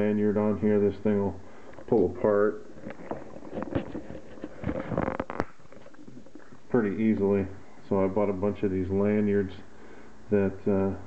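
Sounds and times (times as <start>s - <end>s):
handling rustle: 2.7s - 6.7s.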